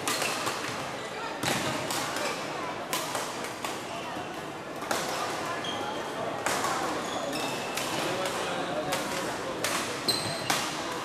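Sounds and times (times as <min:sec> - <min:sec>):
din of voices in hall: 0:00.0 - 0:11.0
racket hitting shuttlecock: 0:07.7 - 0:10.9.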